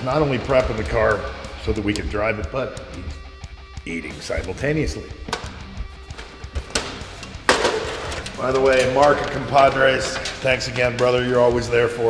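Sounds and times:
background music: 0:00.0 - 0:12.0
foil tray clattering and rustling: 0:06.1 - 0:11.8.

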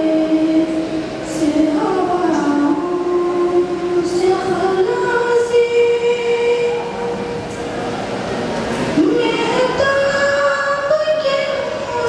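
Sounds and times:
hall reverberation: 0:00.0 - 0:12.0.

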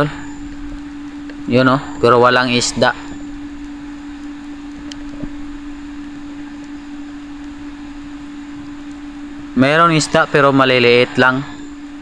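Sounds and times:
steady low underwater hum: 0:00.0 - 0:12.0
faint clicks: 0:03.6 - 0:05.3.

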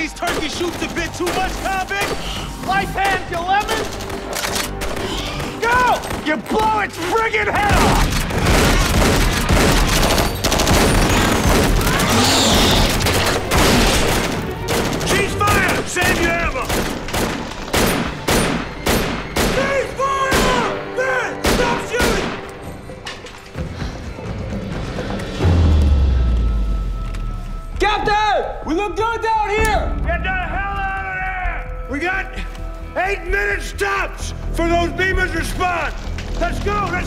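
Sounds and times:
film score music: 0:00.0 - 0:37.0
rapid gunfire: 0:07.6 - 0:20.7
shotgun blasts: 0:07.7 - 0:12.2, 0:13.1 - 0:19.7, 0:21.4 - 0:22.4.

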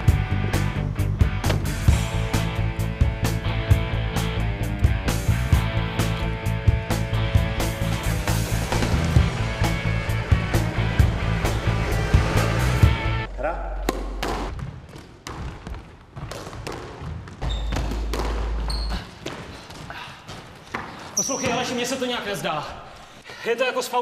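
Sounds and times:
rock music: 0:00.0 - 0:13.3
ball striking court walls: 0:13.8 - 0:21.6
rackets hitting squash ball: 0:13.8 - 0:21.7
short high squeaks: 0:21.2 - 0:21.8.

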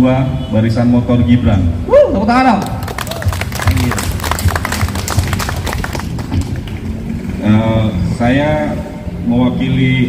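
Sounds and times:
small group applauding: 0:02.5 - 0:07.1.

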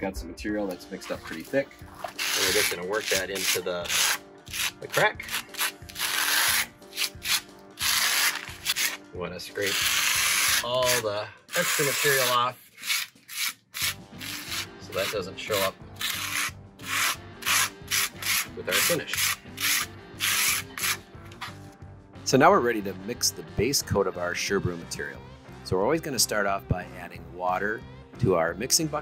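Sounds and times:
faint background music: 0:00.0 - 0:29.0
trowel scraping concrete: 0:01.1 - 0:09.0, 0:09.6 - 0:21.0.

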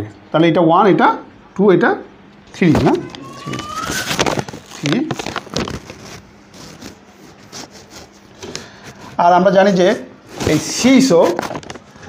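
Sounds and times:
cloth rubbing a whiteboard: 0:05.7 - 0:11.6.

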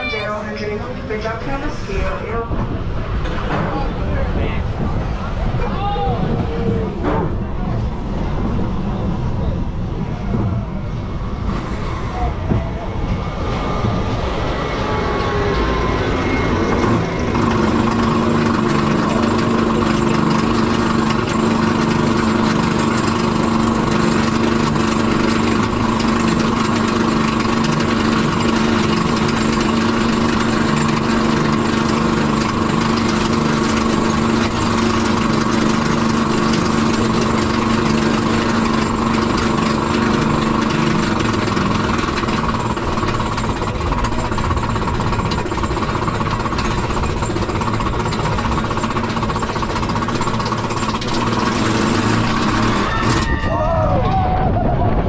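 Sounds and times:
steady mechanical hum: 0:00.0 - 0:55.0
lift chain ratchet clattering: 0:16.6 - 0:53.6.

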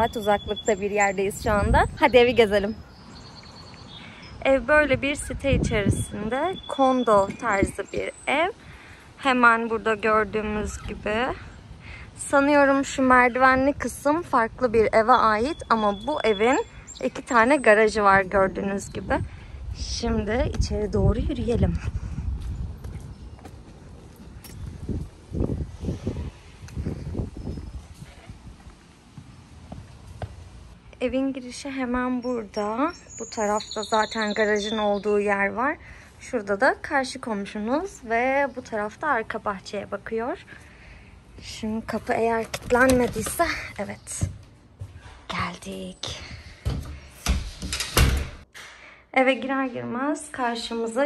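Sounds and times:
footsteps on hard walkway: 0:21.6 - 0:25.2, 0:27.6 - 0:30.5, 0:42.4 - 0:47.7
door thudding shut: 0:46.6 - 0:48.4.

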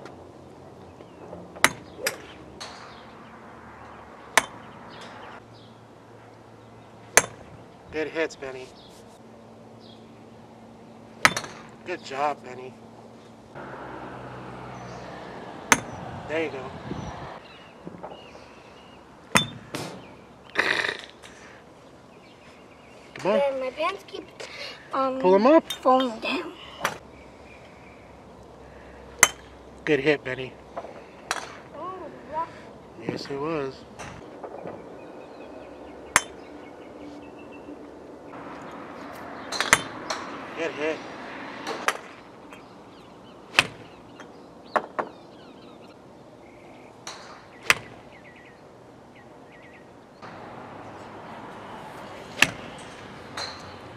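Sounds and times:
golf club striking ball: 0:01.6 - 0:03.1, 0:04.3 - 0:05.3, 0:07.1 - 0:07.5, 0:11.2 - 0:11.8, 0:15.6 - 0:16.1, 0:19.3 - 0:20.1, 0:29.2 - 0:29.6, 0:31.2 - 0:31.7, 0:36.1 - 0:36.5, 0:39.4 - 0:40.4, 0:43.5 - 0:45.1, 0:47.0 - 0:48.0, 0:52.3 - 0:53.9
golf driver striking ball: 0:11.2 - 0:11.8, 0:15.6 - 0:16.0, 0:47.1 - 0:48.0, 0:52.3 - 0:53.8.

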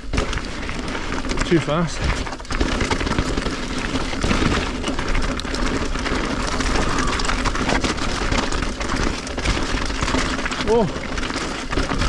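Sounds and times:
bike clicks and rattles: 0:00.0 - 0:12.0
tyres crunching on gravel: 0:00.0 - 0:12.0.

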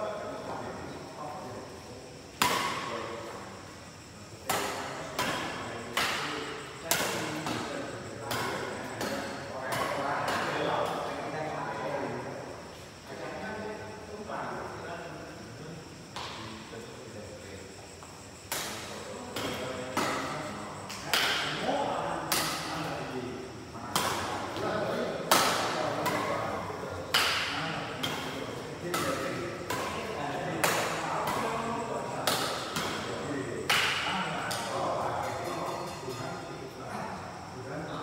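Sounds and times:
badminton rackets hitting shuttlecock: 0:02.4 - 0:02.9, 0:04.5 - 0:07.7, 0:18.5 - 0:21.6, 0:23.9 - 0:24.6, 0:25.3 - 0:31.6, 0:32.2 - 0:36.1.

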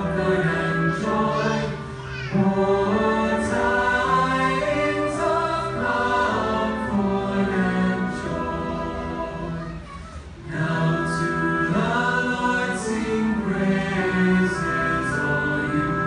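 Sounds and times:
choir singing long notes: 0:00.0 - 0:16.0.

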